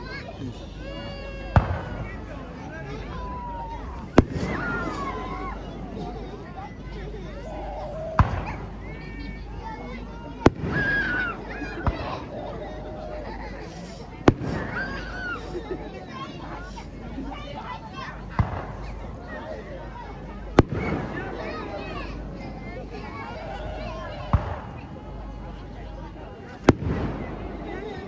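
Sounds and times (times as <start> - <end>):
firework bang: 1.6 - 2.1, 4.1 - 5.3, 8.2 - 8.6, 10.4 - 12.2, 14.2 - 15.3, 20.6 - 21.2, 24.3 - 24.8, 26.6 - 27.4.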